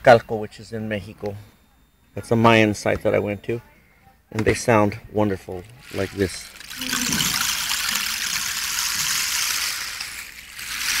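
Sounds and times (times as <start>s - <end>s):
rain stick rushing hiss: 5.8s - 11.0s.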